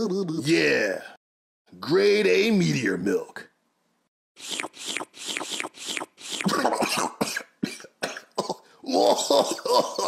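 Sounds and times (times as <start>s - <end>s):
man's pitched vocal sounds: 4.4s - 7.2s
man coughing and spluttering: 6.3s - 10.0s.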